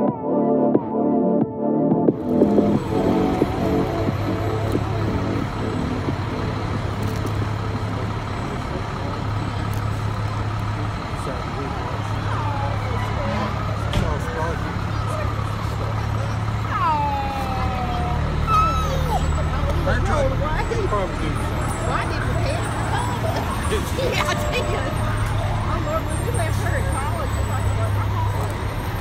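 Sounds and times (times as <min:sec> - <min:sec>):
indistinct voices: 0:02.1 - 0:29.0
siren wail: 0:02.2 - 0:06.1
fire truck engine idling: 0:02.2 - 0:29.0.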